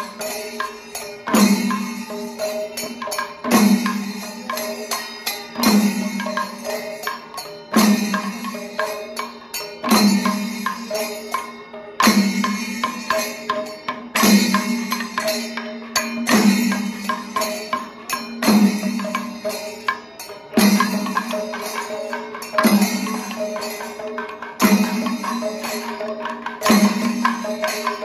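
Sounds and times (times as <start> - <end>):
barrel drums ensemble playing: 20.4 - 28.0.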